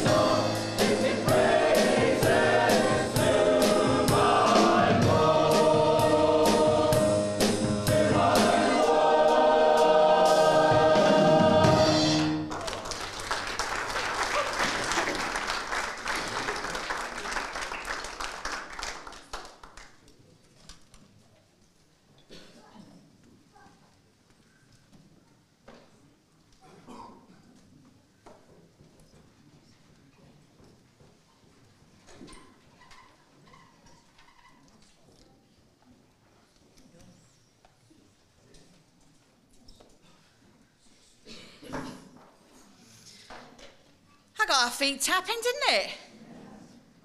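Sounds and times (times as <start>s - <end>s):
steady beat: 0.0s - 12.4s
choir singing upbeat song: 0.0s - 12.5s
applause: 12.2s - 20.1s.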